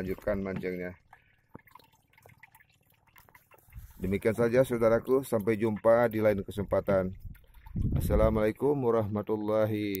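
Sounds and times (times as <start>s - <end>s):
water lapping against boat hull: 0.0s - 10.0s.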